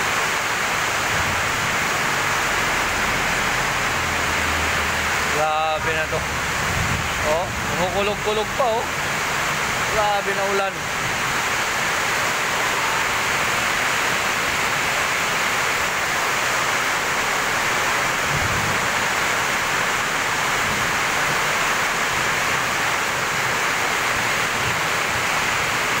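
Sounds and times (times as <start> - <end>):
heavy rain pouring: 0.0 - 26.0.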